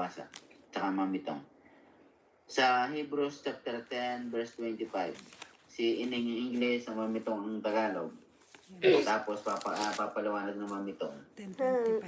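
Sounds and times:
papery rustle: 3.9s - 10.9s.

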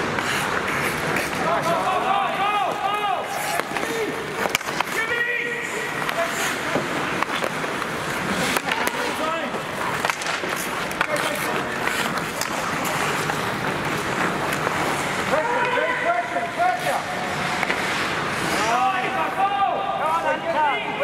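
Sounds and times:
hockey sticks and puck clacking: 0.0s - 21.0s
skates scraping ice: 0.0s - 21.0s.

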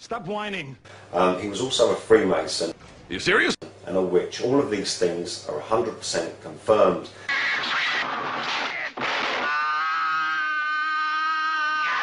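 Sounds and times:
person yelling: 9.4s - 12.0s.

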